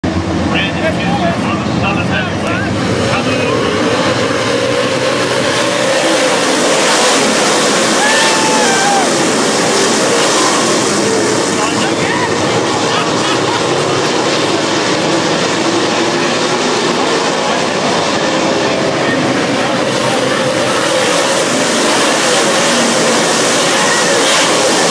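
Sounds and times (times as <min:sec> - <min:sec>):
crowd voices: 0:00.0 - 0:24.9
race car engines droning: 0:00.0 - 0:24.9.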